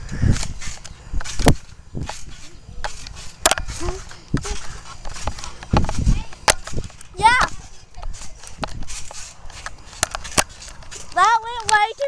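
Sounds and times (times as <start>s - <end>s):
camera handling knocks and rubbing: 0.4s - 11.8s.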